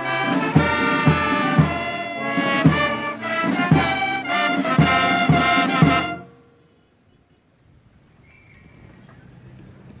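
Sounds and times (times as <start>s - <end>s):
open-air background ambience: 0.0s - 10.0s.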